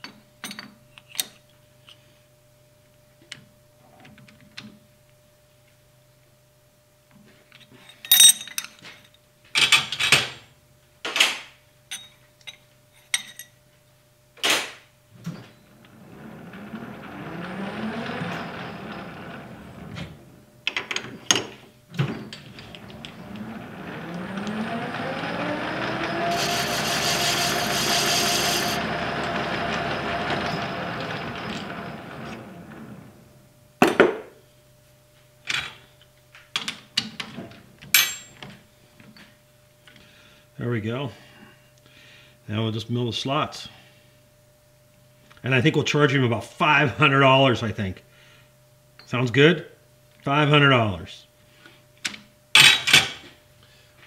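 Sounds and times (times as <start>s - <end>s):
lathe chuck spinning with whine: 15.5s - 21.2s, 22.0s - 33.4s.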